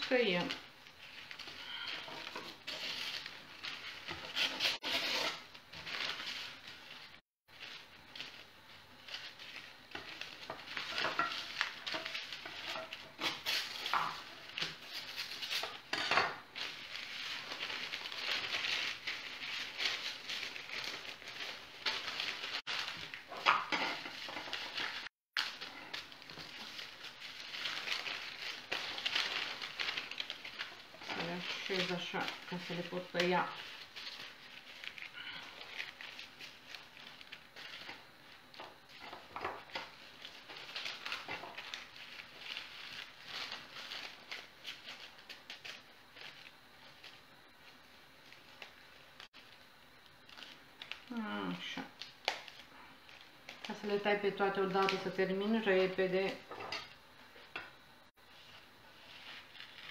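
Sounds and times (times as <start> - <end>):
paper crinkling and tearing: 0.0 - 49.6, 50.2 - 55.2, 58.3 - 59.9.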